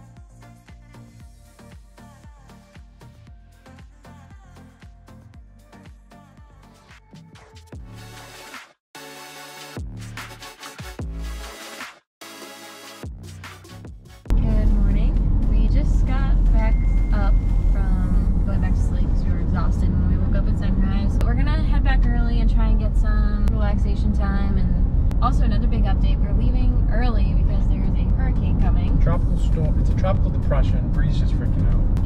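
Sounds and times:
woman talking: 14.3 - 29.0
car cabin road noise: 14.3 - 32.0
man talking: 29.0 - 32.0.

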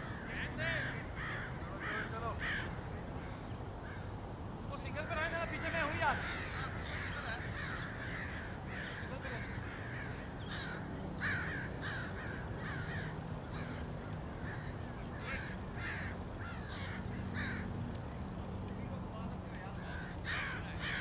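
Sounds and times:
bird calling: 0.0 - 18.2, 18.8 - 21.0
steady low hum: 0.0 - 21.0.

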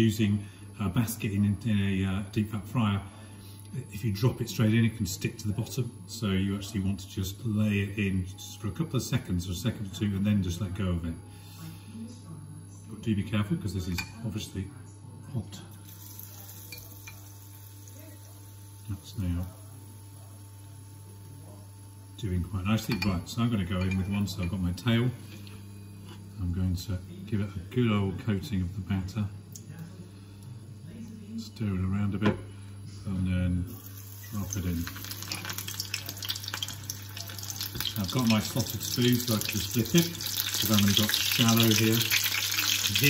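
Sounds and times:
oil sizzling in a frying pan: 15.8 - 22.0, 33.7 - 43.0.

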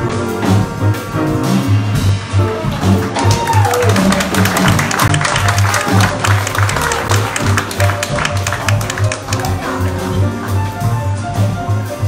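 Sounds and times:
drums: 0.0 - 12.0
piano: 0.0 - 12.0
upright bass line: 0.0 - 12.0.

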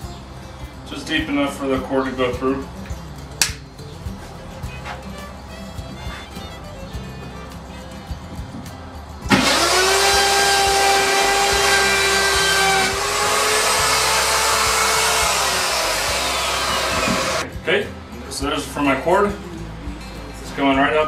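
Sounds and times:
power tool whining: 9.3 - 17.4.

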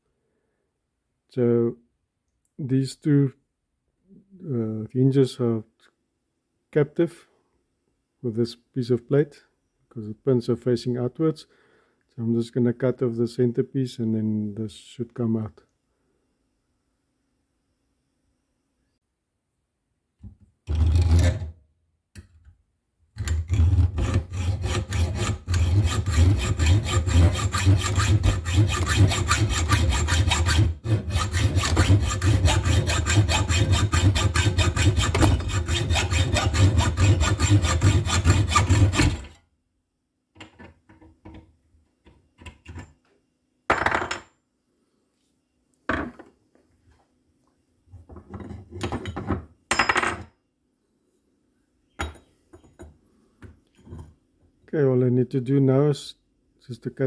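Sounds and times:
hacksaw cutting through steel: 20.7 - 21.5, 23.2 - 39.4.

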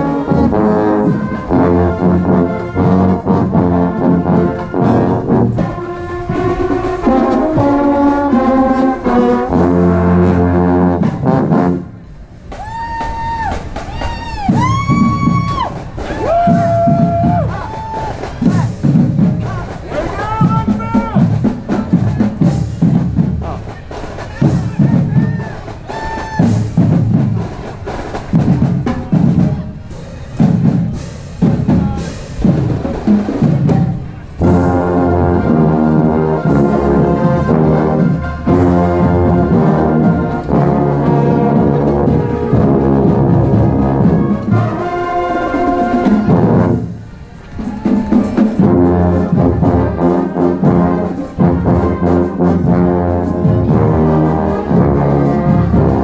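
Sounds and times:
marching band brass playing: 0.0 - 56.0
marching drum beat: 0.0 - 56.0.

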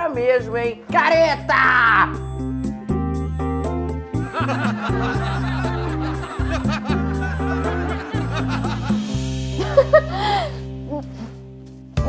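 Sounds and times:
background music with bass line: 0.0 - 12.0
laughter: 4.2 - 10.6.

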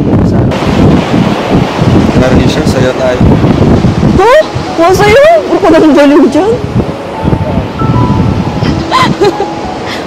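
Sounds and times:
surf washing on beach: 0.0 - 10.0
wind buffeting a microphone: 0.0 - 10.0.

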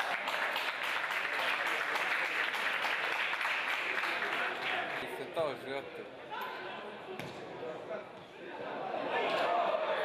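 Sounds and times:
football kicked with thud: 7.2 - 7.4.

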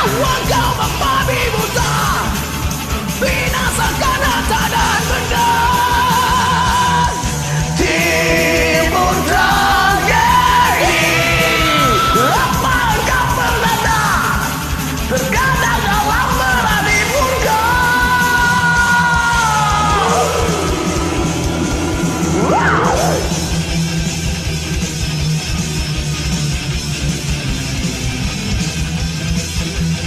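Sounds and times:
man yelling singing: 0.0 - 2.4, 3.2 - 23.5
karaoke backing track: 0.0 - 30.0.

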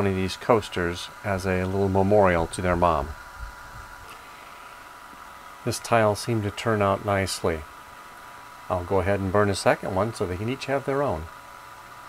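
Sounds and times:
machinery hum and hiss: 0.0 - 12.0.

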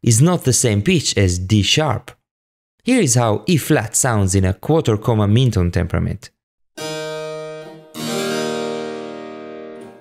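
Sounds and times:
keyboard instrument note: 6.8 - 10.0.

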